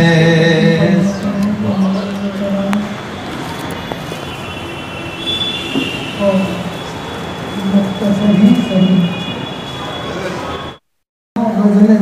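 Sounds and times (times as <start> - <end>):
microphone hiss and hum: 0.0 - 9.4.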